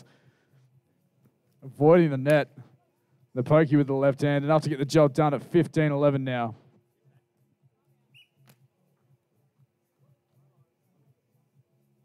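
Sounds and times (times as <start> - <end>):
faint high chirp: 8.0 - 8.6.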